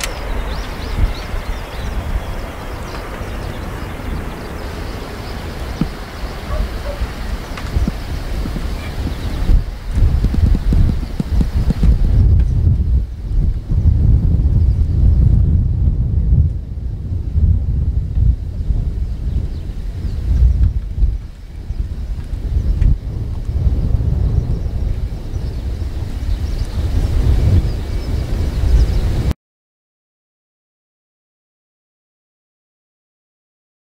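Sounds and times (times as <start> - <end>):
turboprop aircraft flying past: 0.0 - 9.5
wind buffeting microphone: 0.0 - 29.4.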